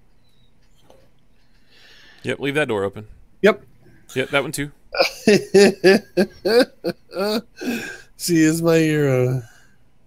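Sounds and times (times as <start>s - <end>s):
man laughing hard: 5.0s - 8.0s.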